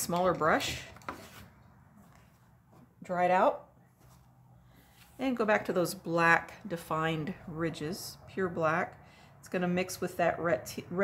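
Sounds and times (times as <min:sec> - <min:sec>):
faint handling sounds: 0:00.8 - 0:03.1, 0:03.8 - 0:05.7.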